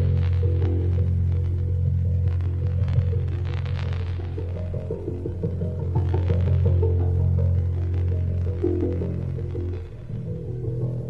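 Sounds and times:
low bass drone: 0:00.0 - 0:11.0.

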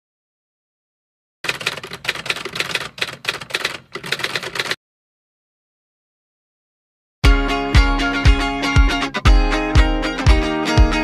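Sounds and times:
typewriter key clatter: 0:01.4 - 0:04.8.

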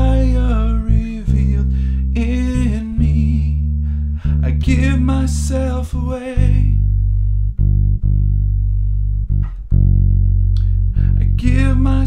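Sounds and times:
electric bass guitar notes: 0:00.0 - 0:12.0.

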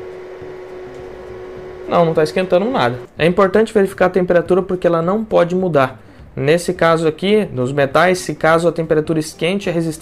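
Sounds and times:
faint even whir: 0:00.0 - 0:03.1
steady electrical hum: 0:00.0 - 0:03.7.

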